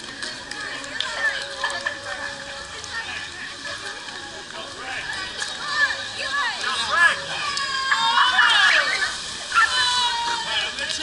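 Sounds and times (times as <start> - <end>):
splash into pool: 5.1 - 11.0
high-pitched voices shouting: 5.6 - 10.8.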